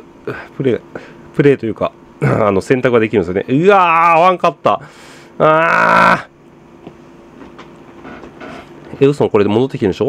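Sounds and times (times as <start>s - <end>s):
air conditioner hum: 0.0s - 10.0s
man groaning: 5.4s - 6.3s.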